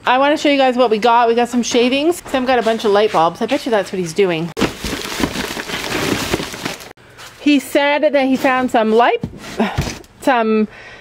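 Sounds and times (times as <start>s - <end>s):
plastic bag rustling: 4.6s - 7.4s.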